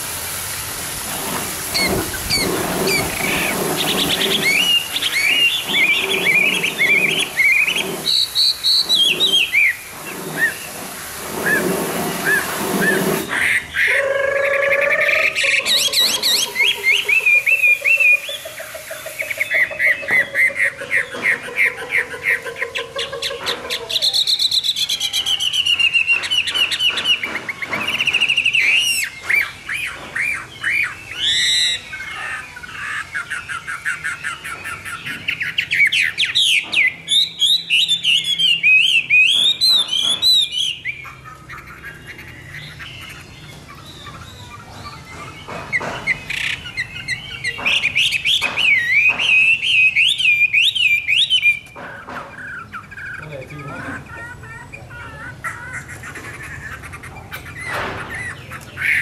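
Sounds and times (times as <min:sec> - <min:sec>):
bird singing whistled notes: 0:01.7 - 0:10.7, 0:11.4 - 0:21.8, 0:23.9 - 0:51.8.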